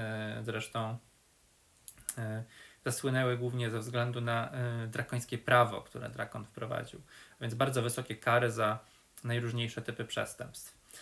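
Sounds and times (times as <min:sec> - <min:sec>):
man speaking: 0:00.0 - 0:01.1, 0:02.0 - 0:10.8.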